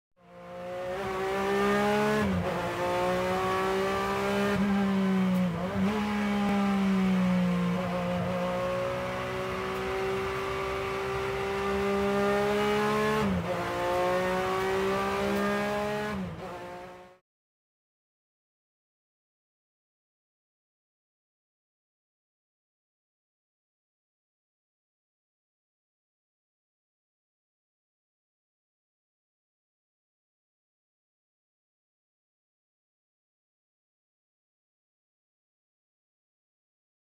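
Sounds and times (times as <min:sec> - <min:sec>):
car engine at high revs: 0:00.2 - 0:17.2.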